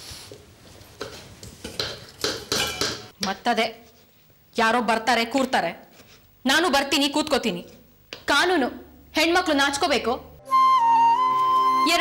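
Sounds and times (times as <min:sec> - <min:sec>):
dishes and utensils clattering: 0:01.0 - 0:03.1.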